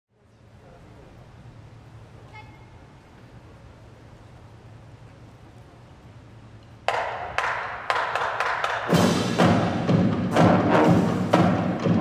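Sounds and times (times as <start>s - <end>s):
steady low hum: 0.1s - 12.0s.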